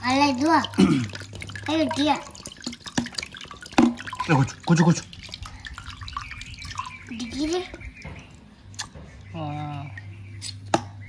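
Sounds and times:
liquid pouring into a steel pot: 0.0 - 7.9
dripping plops into liquid: 0.0 - 9.0.

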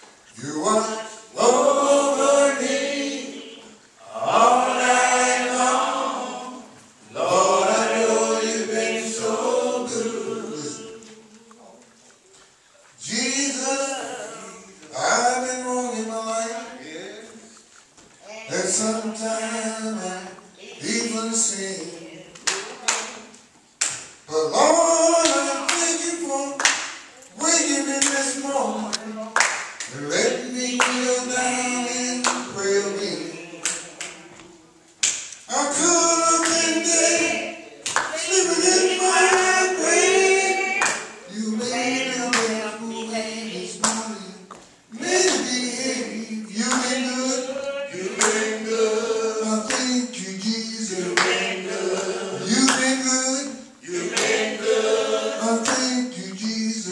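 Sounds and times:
men singing hymn: 0.4 - 11.3, 24.3 - 26.6, 29.9 - 34.6, 35.5 - 56.9
hand clapping: 23.8 - 24.2, 26.6 - 27.2, 28.0 - 28.3, 28.9 - 30.0, 30.8 - 31.1, 32.2 - 32.5, 35.0 - 35.4, 36.4 - 36.7, 37.8 - 38.2, 40.7 - 41.1, 42.3 - 42.6, 43.8 - 45.5, 48.1 - 48.6, 49.7 - 51.5, 52.6 - 53.0, 54.1 - 54.5, 55.6 - 56.6.

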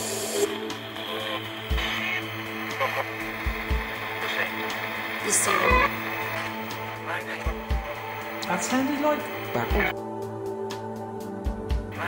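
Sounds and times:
white-noise static and hum: 0.0 - 9.9
reversed garbled speech: 1.0 - 9.9.

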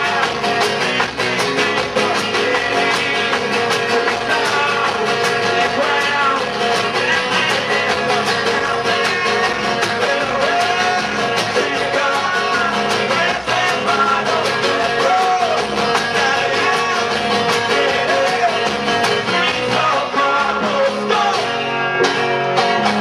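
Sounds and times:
acoustic guitar: 0.0 - 23.0
strummed banjo: 0.0 - 23.0
upright bass: 0.0 - 23.0
man singing loudly: 1.5 - 22.0.

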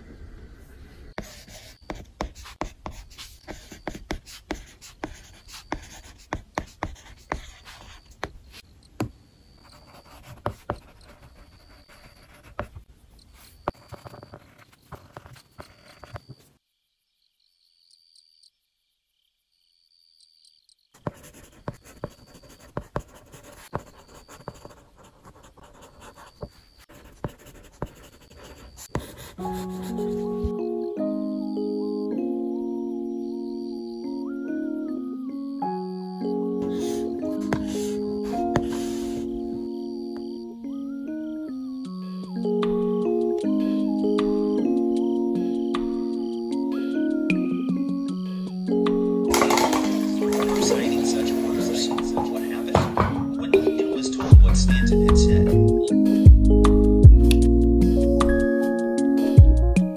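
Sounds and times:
stylus scratching on tablet screen: 1.2 - 8.6, 9.6 - 16.4, 21.0 - 30.5, 36.7 - 39.3.

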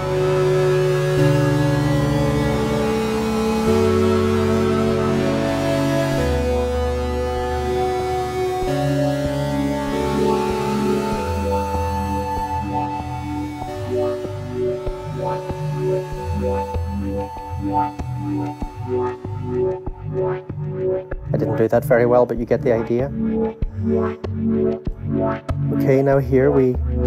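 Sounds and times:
gated synthesizer chords: 0.0 - 27.0.

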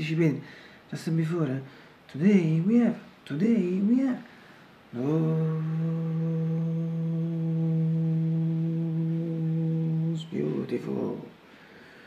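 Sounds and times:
man singing long low note: 4.9 - 11.3.

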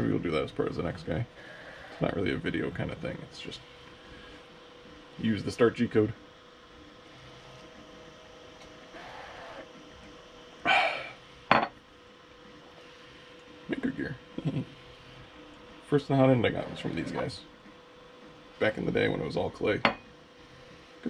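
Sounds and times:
faint printer hum: 0.0 - 21.0.

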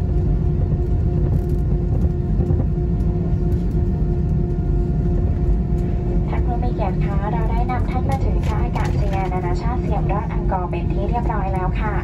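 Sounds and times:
airliner cabin rumble: 0.0 - 12.0
woman announcing over speaker: 6.3 - 12.0.

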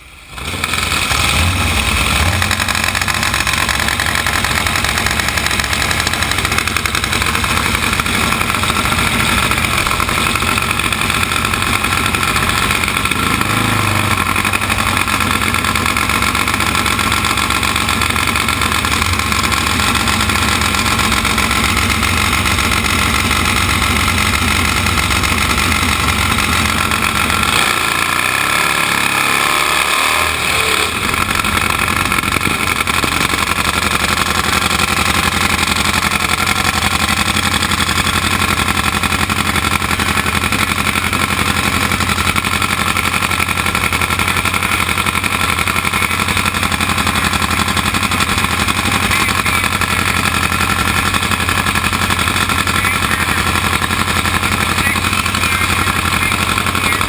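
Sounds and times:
motorcycle engine idling loudly: 0.0 - 57.0.

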